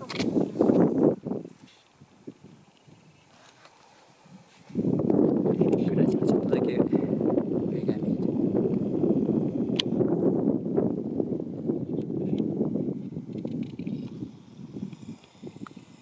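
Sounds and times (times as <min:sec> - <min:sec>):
wind buffeting microphone: 0:00.0 - 0:03.5, 0:04.1 - 0:16.0.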